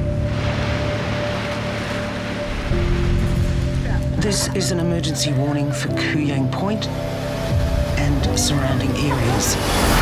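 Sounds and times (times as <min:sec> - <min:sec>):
ocean surf washing: 0:00.0 - 0:10.0.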